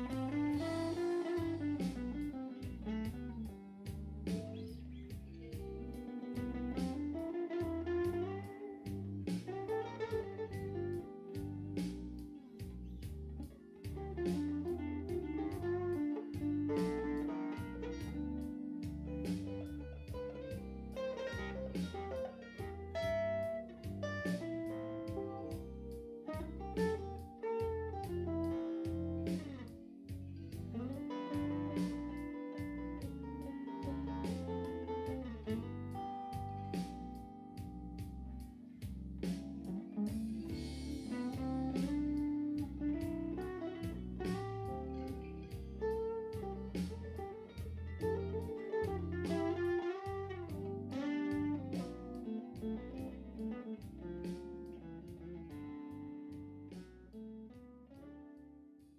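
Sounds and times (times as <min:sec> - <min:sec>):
electric guitar playing blues: 0:00.0 - 0:58.9.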